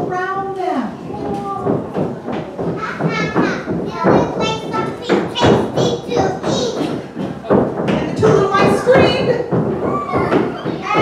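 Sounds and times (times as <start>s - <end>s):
feet thudding on stage: 1.1s - 11.0s
children shrieking: 9.8s - 11.0s.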